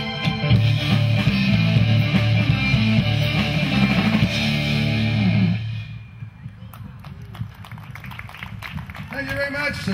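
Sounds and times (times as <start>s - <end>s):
audience clapping: 6.7s - 9.9s.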